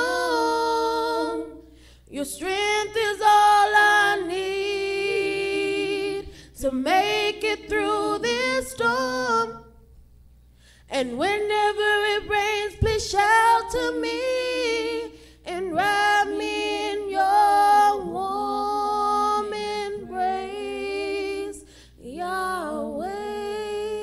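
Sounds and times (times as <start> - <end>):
women singing gospel unaccompanied: 0.0 - 9.8, 10.9 - 24.0.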